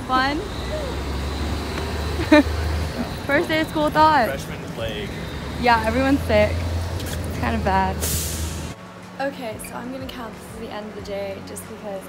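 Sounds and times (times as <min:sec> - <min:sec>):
road traffic engine rumble: 0:00.0 - 0:12.0.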